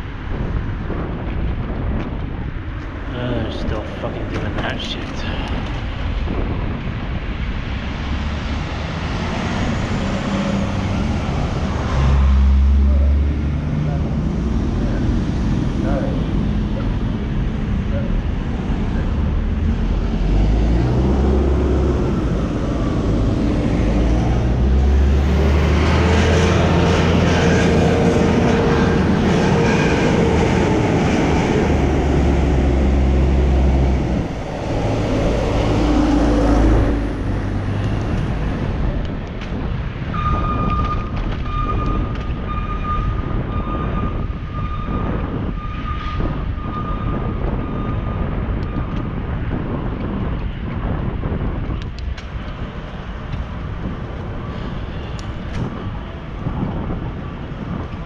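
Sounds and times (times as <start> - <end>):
low engine rumble: 0.0 - 58.0
road traffic noise: 0.0 - 58.0.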